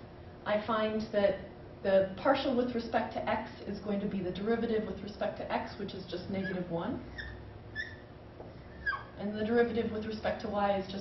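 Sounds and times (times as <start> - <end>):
marker squeaking on whiteboard: 6.4 - 9.2.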